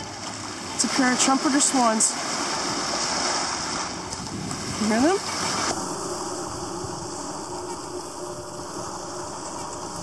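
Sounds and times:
waves washing onto pebbles: 0:00.0 - 0:06.0
wind on microphone: 0:03.5 - 0:10.0.

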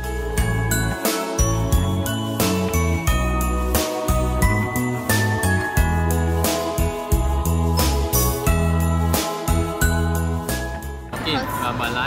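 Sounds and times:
bass line: 0:00.0 - 0:11.1.

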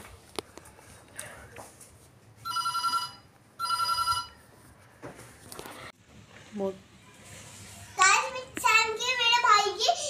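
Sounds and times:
electronic telephone ringing: 0:02.4 - 0:04.4.

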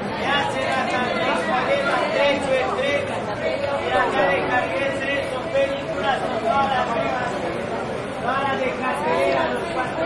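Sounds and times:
babble of voices: 0:00.0 - 0:10.0.

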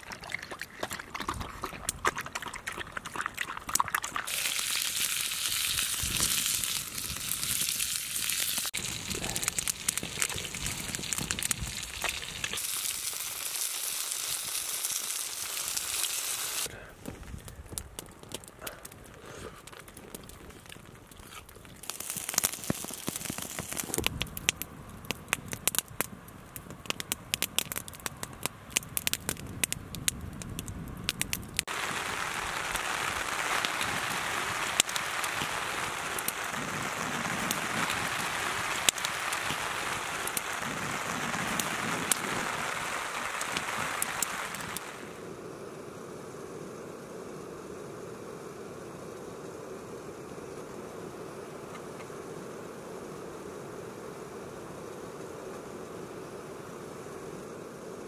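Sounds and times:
campfire crackling and popping: 0:00.0 - 0:45.2
outdoor background: 0:00.0 - 0:58.0
fire hissing: 0:04.2 - 0:58.0.

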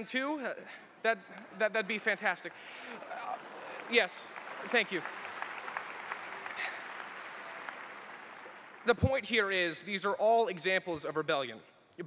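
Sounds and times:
audience applauding: 0:02.7 - 0:09.6.

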